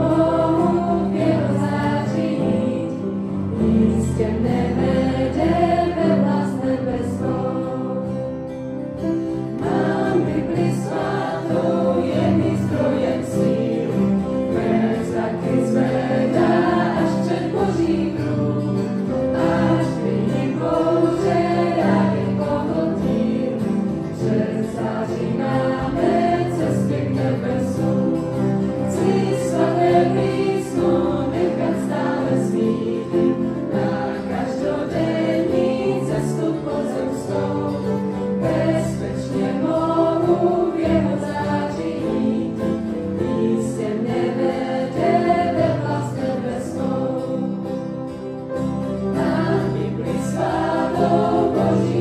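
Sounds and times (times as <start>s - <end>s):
youth choir singing a hymn: 0.0s - 8.6s, 9.4s - 48.2s, 48.8s - 52.0s.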